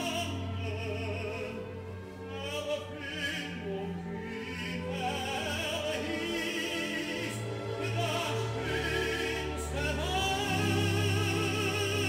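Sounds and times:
operatic singing: 0.0s - 12.0s
orchestral accompaniment: 0.0s - 12.0s.

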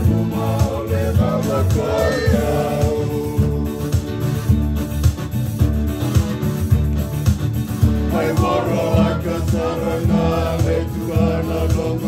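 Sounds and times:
man singing: 0.0s - 4.1s
acoustic guitar: 0.0s - 12.0s
electronic keyboard: 0.0s - 12.0s.

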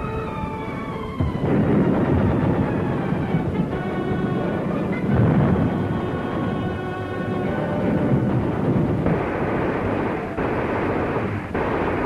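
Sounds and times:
orchestral music with held tones: 0.0s - 8.9s
low rumble of battle noise: 0.0s - 12.0s
explosions: 1.1s - 12.0s
gunfire: 7.9s - 12.0s.

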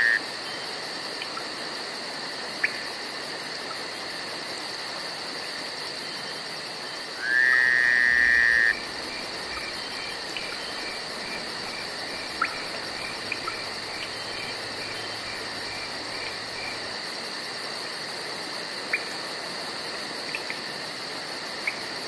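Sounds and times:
insects trilling: 0.0s - 22.0s
sharp insect chirps: 7.0s - 17.6s
pulsing insect buzz: 7.2s - 16.8s.

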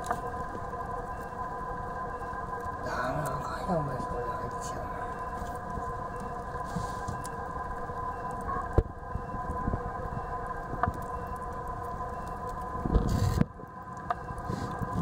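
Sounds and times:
steady mechanical hum: 0.0s - 15.0s.

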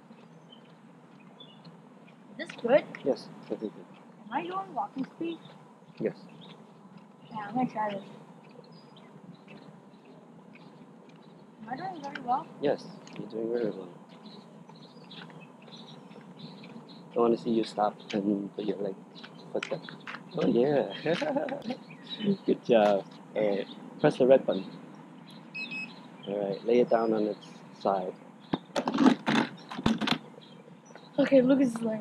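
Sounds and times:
birds chirping: 0.0s - 32.0s
faint outdoor background: 0.0s - 32.0s.

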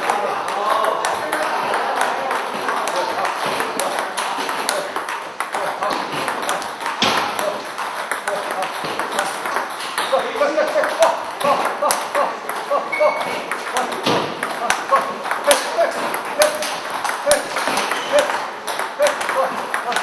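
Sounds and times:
table tennis ball ticking: 0.0s - 20.0s.

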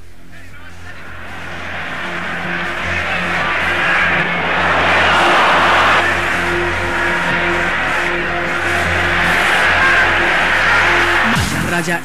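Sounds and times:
low held tone: 0.0s - 11.4s
voices calling: 0.3s - 12.0s
rushing noise: 0.6s - 11.4s.

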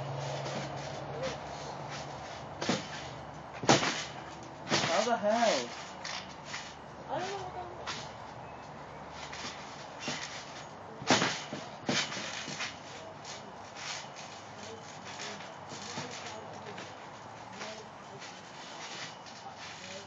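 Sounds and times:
thuds on a trampoline: 0.0s - 5.5s, 9.2s - 14.0s.

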